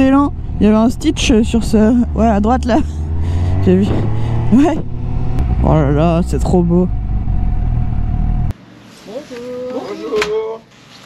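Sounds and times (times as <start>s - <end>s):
motorcycle engine rumble: 0.0s - 8.5s.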